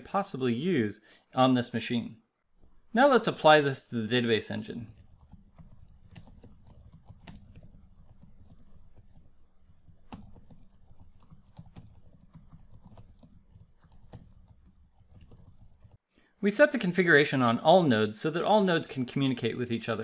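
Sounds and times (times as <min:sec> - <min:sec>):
keyboard typing clicks: 0:04.9 - 0:16.0.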